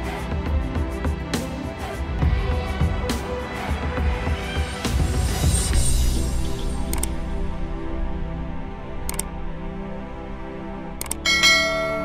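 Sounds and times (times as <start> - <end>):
background music: 0.0 - 12.0
bright bell chime: 11.2 - 12.0.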